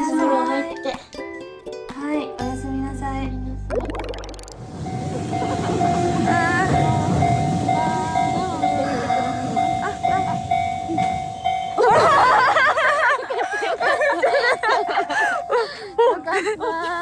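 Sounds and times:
train wheels rumbling: 4.6s - 15.5s
crossing warning bell ringing: 4.6s - 16.6s.

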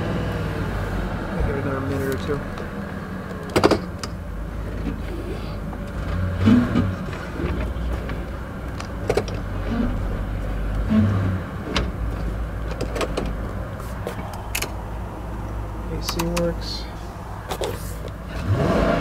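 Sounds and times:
car engine idling: 0.0s - 19.0s
sharp clicks and knocks: 2.1s - 5.0s, 5.7s - 10.9s, 11.6s - 14.8s, 16.0s - 16.5s.

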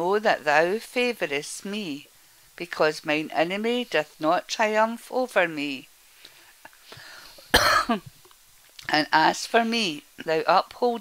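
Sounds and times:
person speaking: 2.6s - 5.9s
person coughing: 7.5s - 8.1s.

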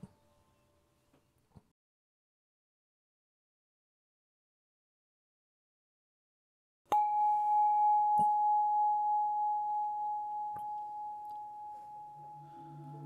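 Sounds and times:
ambient music with singing bowls: 7.0s - 13.0s
low drone: 12.1s - 13.0s.

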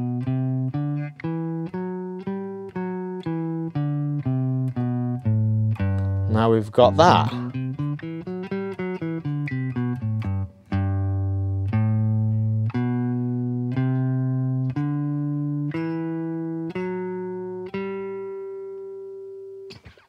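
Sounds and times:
clean electric guitar notes: 0.0s - 19.8s.

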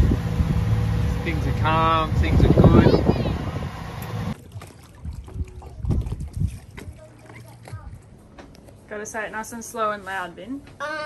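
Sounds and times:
wind buffeting microphone: 0.0s - 8.3s.

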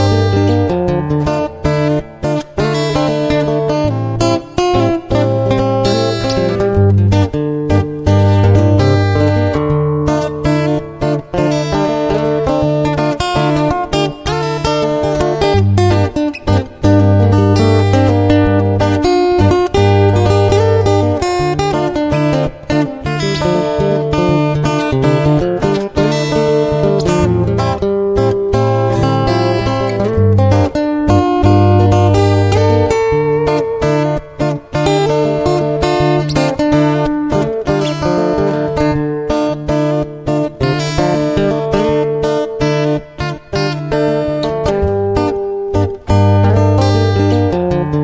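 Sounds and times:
strummed acoustic guitar: 0.0s - 48.0s.

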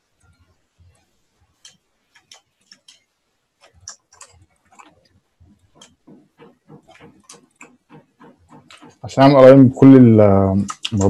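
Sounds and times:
mouse and keyboard clicking: 1.6s - 9.0s.

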